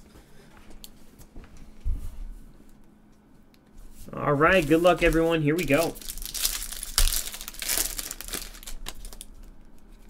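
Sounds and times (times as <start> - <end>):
foil pack crinkling: 4.4 - 10.0.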